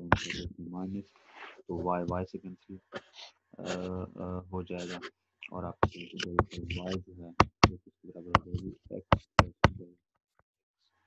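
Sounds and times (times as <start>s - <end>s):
stylus tapping a drawing tablet: 5.8s - 9.8s.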